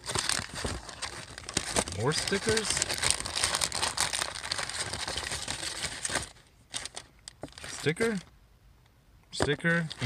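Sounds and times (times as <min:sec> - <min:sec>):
paper and packaging rustling: 0:00.0 - 0:08.2, 0:09.4 - 0:10.0.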